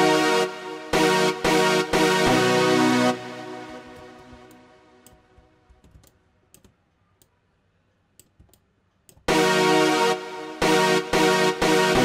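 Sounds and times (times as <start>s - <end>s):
computer mouse clicks: 4.2s - 7.4s.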